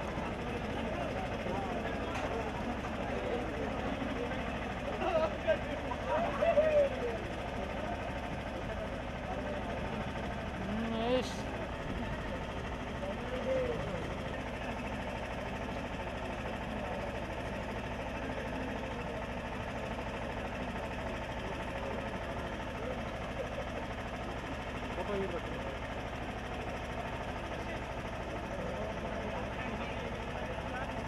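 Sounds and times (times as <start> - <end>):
indistinct chatter: 0.0 - 31.0
low mechanical hum: 0.0 - 31.0.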